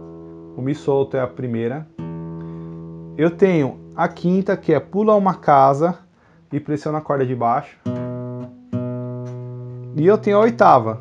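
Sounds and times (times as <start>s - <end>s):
acoustic guitar strings plucked: 0.0s - 5.4s, 7.8s - 11.0s.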